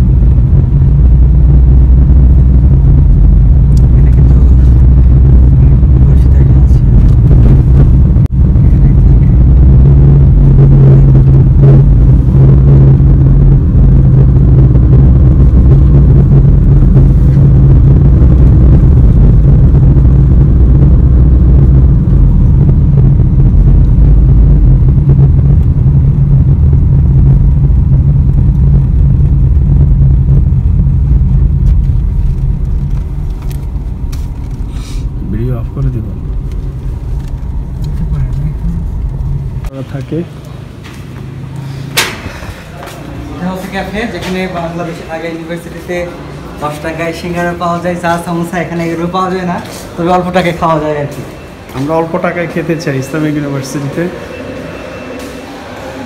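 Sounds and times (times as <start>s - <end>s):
car interior driving rumble: 0.0s - 55.2s.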